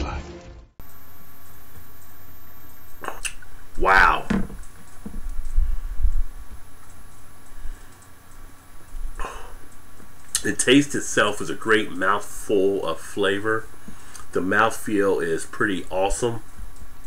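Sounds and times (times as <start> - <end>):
man sipping beer: 2.8 - 3.8, 7.5 - 9.7
short voiced sound: 3.0 - 4.4.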